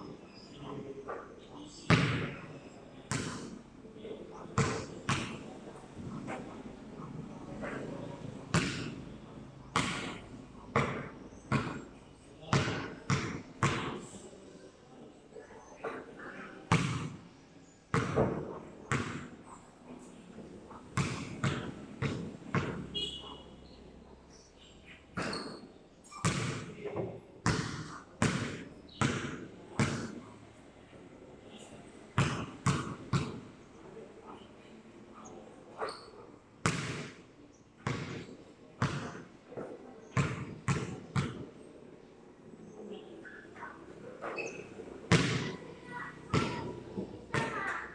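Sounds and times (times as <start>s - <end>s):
basketball bouncing on concrete: 4.6s - 5.4s, 8.5s - 8.9s, 9.7s - 11.8s, 12.5s - 13.9s, 16.7s - 17.2s, 17.9s - 19.3s, 21.0s - 22.8s, 26.2s - 30.2s, 32.2s - 33.4s, 36.6s - 37.2s, 37.8s - 39.2s, 40.2s - 41.4s, 45.1s - 45.5s.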